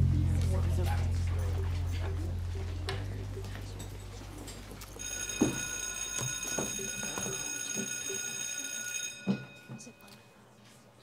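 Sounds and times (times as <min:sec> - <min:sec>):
electric school bell ringing: 0:03.9 - 0:10.3.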